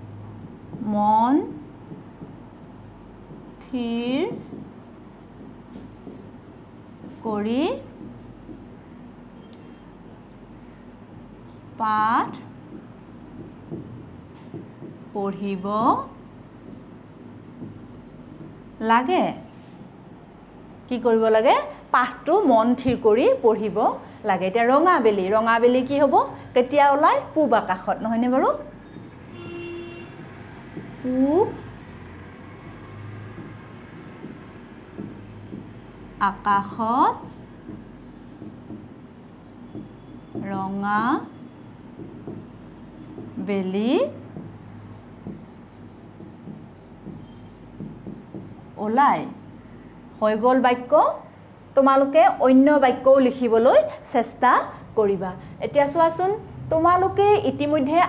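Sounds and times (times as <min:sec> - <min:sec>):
marker scratching on board: 0:00.0 - 0:09.6, 0:11.2 - 0:20.6, 0:28.8 - 0:31.8, 0:32.6 - 0:48.6, 0:49.2 - 0:49.8
steady low hum: 0:00.0 - 0:21.0, 0:28.5 - 0:50.2.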